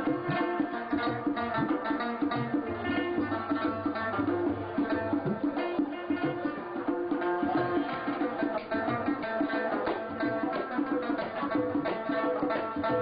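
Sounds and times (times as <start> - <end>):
plucked rubab melody: 0.0 - 13.0.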